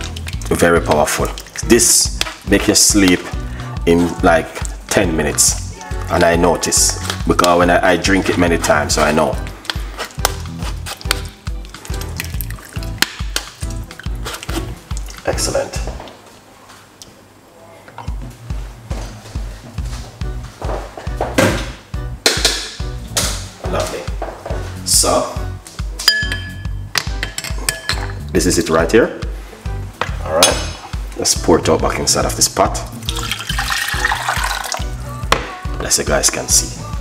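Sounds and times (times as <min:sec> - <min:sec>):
tea splashing into saucepan: 0:11.1 - 0:15.2, 0:33.0 - 0:34.8
background music with bass beat: 0:18.1 - 0:28.4, 0:29.2 - 0:37.0.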